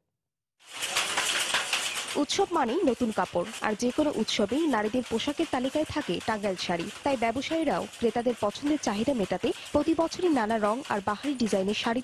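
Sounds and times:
handloom clattering: 0:00.7 - 0:12.0.

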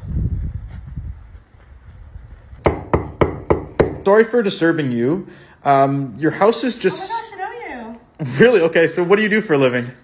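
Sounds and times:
knocking on wooden door: 0:02.6 - 0:04.1.

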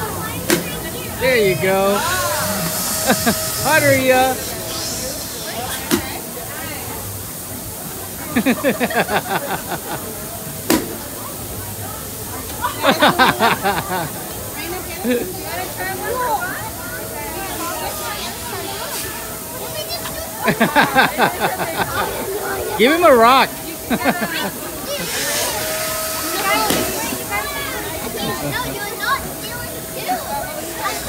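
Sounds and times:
steady background hiss: 0:00.0 - 0:31.0
bursts of laughter: 0:02.6 - 0:03.6, 0:08.3 - 0:10.1, 0:12.8 - 0:14.2, 0:20.4 - 0:22.7, 0:23.8 - 0:25.0.

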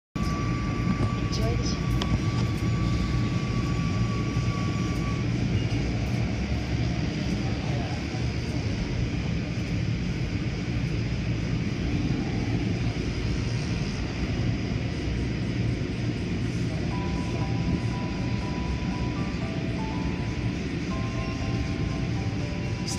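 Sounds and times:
tune of held notes: 0:16.8 - 0:22.9.

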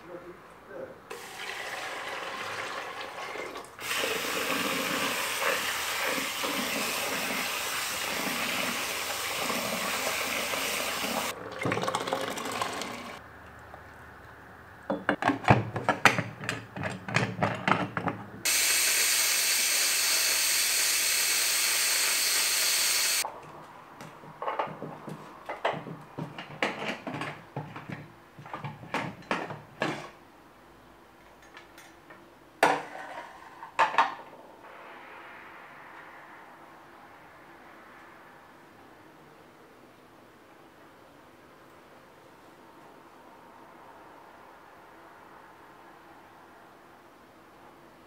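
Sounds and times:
tap water rushing into pot: 0:01.1 - 0:13.2
pressure cooker steam hissing: 0:03.8 - 0:11.3, 0:18.5 - 0:23.3
soft steady hiss: 0:33.5 - 0:48.0.

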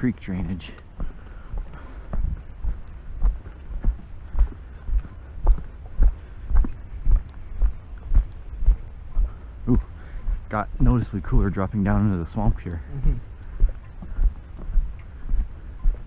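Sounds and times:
footsteps on dirt trail: 0:00.0 - 0:16.0.

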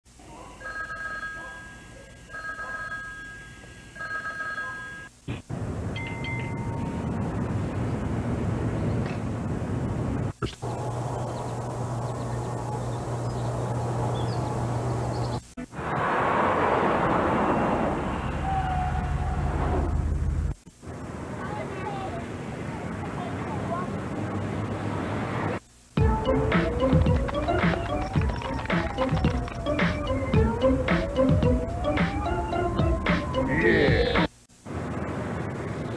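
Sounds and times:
payphone ringing: 0:00.6 - 0:05.1
steady rumbling noise: 0:05.2 - 0:35.9.

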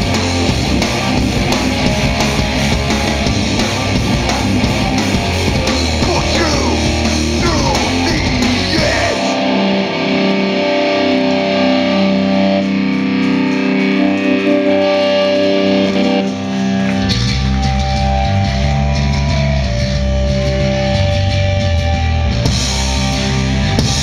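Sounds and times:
distorted electric guitar chords: 0:00.0 - 0:24.0
loud punk band playing: 0:00.0 - 0:24.0.

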